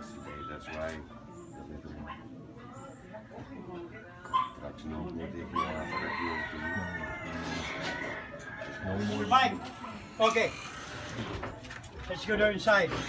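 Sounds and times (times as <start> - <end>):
faint voices: 0.0 - 13.0
rooster crowing: 5.6 - 9.6.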